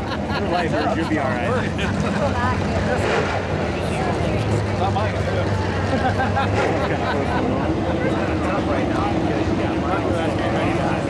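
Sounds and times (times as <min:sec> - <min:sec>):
nearby voices: 0:00.0 - 0:11.0
race car engines running: 0:00.0 - 0:11.0.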